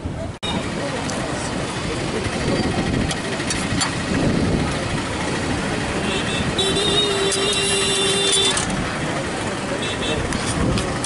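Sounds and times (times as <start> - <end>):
people talking: 0.0 - 11.0
vehicle engines running: 0.0 - 11.0.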